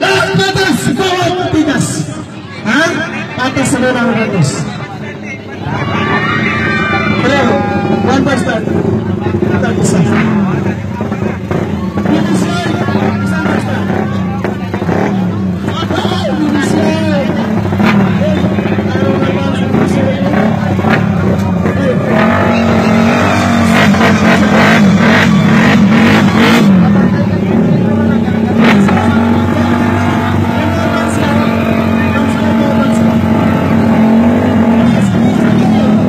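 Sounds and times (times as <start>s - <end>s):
crowd voices: 0.0s - 36.0s
motorcycle engines revving: 0.0s - 36.0s.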